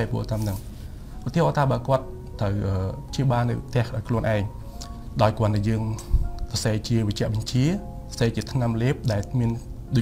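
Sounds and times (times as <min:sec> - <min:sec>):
man speaking: 0:00.0 - 0:00.6, 0:01.2 - 0:04.6, 0:05.2 - 0:10.0
quiet music: 0:00.0 - 0:10.0.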